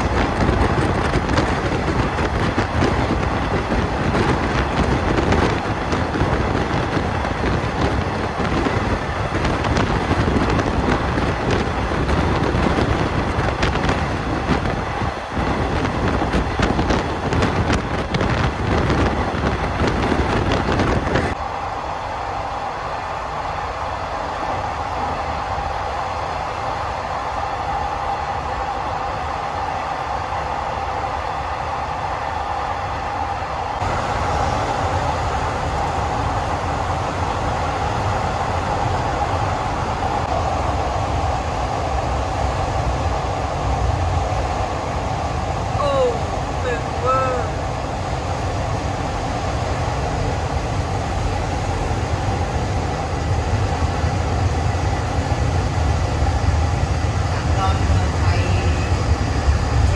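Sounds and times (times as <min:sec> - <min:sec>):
train wheels clattering on rails: 0:00.0 - 0:21.4
train rumble: 0:00.0 - 0:59.9
wind through train window: 0:00.0 - 0:59.9.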